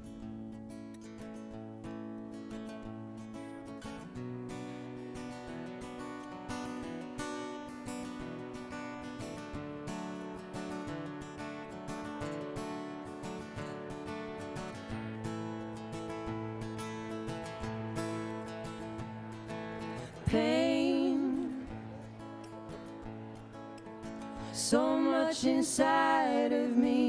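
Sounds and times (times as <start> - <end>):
acoustic guitar strumming chords: 0.0 - 27.0.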